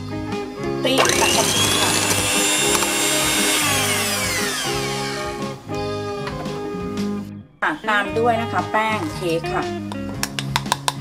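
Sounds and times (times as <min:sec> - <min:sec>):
electric hand mixer whining: 0:01.0 - 0:05.5.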